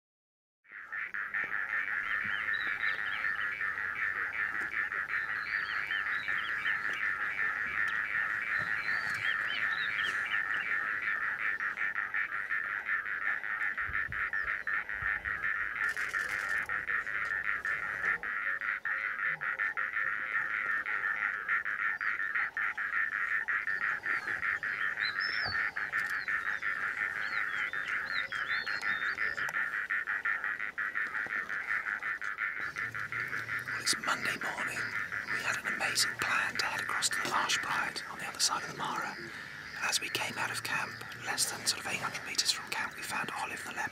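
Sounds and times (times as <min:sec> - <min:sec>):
birds chirping: 0:00.8 - 0:43.9
insects chorus: 0:00.8 - 0:43.9.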